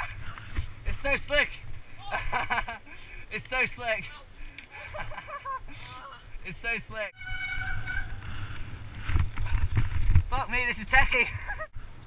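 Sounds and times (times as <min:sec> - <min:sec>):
bike disc brake squealing: 0:07.2 - 0:08.4.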